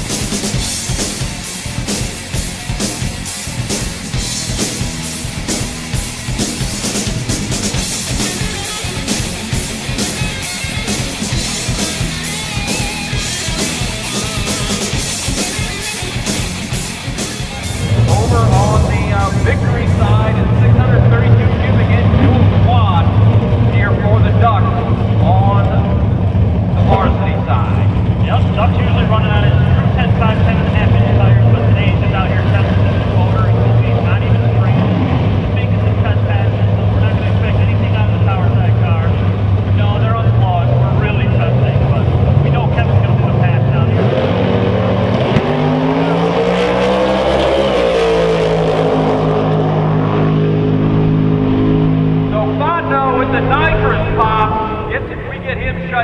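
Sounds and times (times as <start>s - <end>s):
drag car engines revving: 0.0s - 56.0s.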